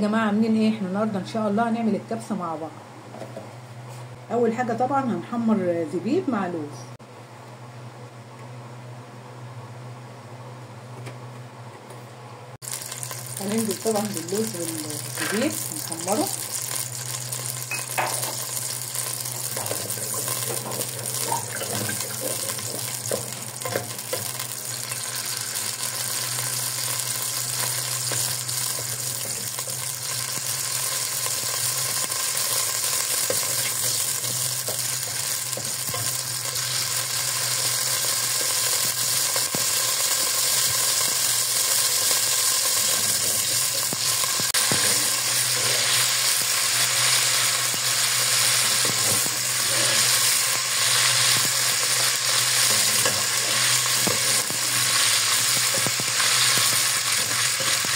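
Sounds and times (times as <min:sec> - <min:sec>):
food sizzling in oil: 0:12.6 - 0:57.9.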